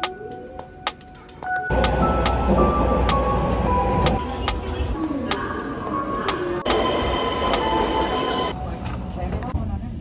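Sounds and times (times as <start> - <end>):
electric train running with clicks: 1.7 - 5.4, 6.2 - 9.5.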